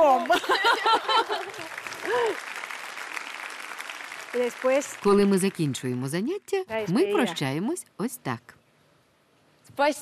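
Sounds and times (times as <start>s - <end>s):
audience applauding: 0.0s - 5.9s.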